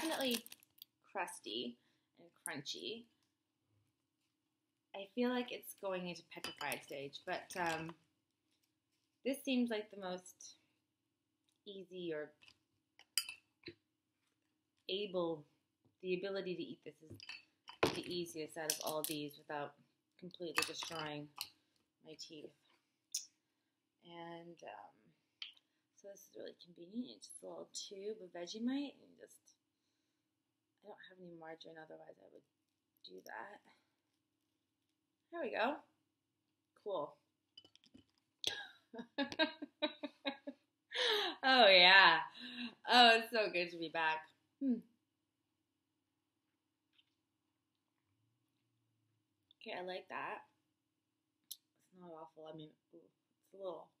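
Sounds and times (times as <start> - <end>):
woman laughing: 38.5 - 41.5.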